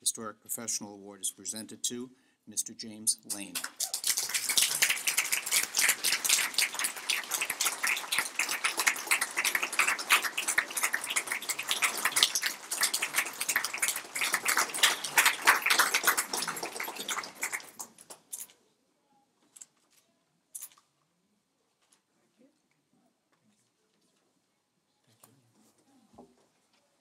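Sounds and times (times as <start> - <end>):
crowd applauding: 3.3 - 18.3.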